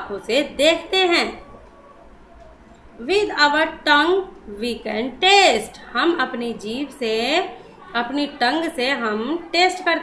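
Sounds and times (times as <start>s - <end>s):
woman's voice: 0.0s - 1.5s, 3.0s - 10.0s.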